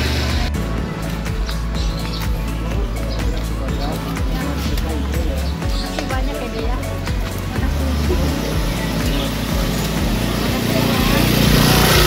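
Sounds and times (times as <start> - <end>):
motorcycle engine passing by: 0.0 - 1.4, 7.4 - 12.0
background music: 0.0 - 12.0
voices: 0.0 - 12.0.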